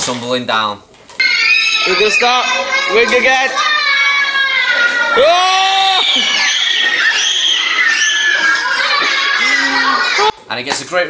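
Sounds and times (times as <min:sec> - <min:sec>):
children shrieking and shouting: 0:01.2 - 0:10.4.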